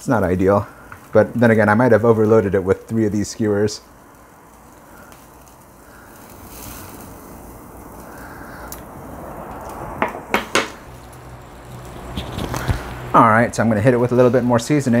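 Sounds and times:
meat sizzling over charcoal: 0.0 - 15.0.

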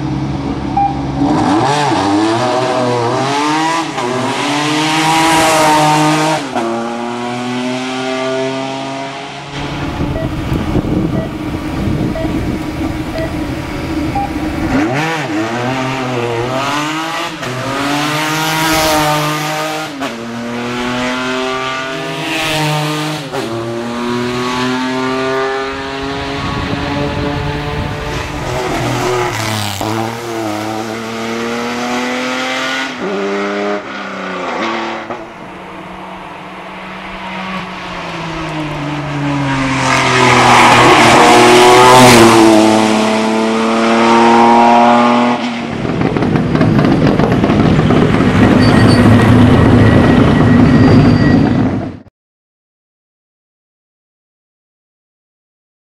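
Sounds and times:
race car engine accelerating: 0.1 - 52.0.

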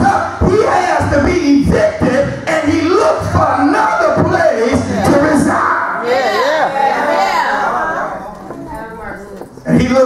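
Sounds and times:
man preaching: 0.0 - 6.7, 9.6 - 10.0
faint voices: 5.0 - 10.0.

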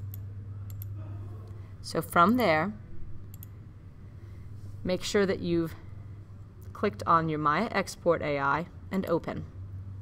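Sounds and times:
steady low hum: 0.0 - 10.0
computer mouse clicks: 0.1 - 0.9, 3.2 - 3.5.

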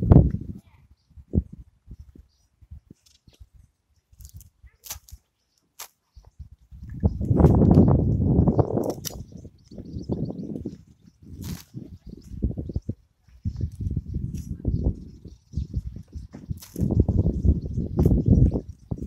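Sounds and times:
edging tool crunching through soil: 4.2 - 6.0, 11.3 - 11.9, 16.5 - 17.0.

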